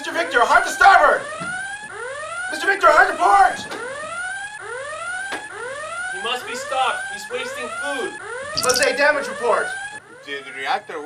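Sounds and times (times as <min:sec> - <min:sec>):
whooping alarm: 0:00.2 - 0:11.0.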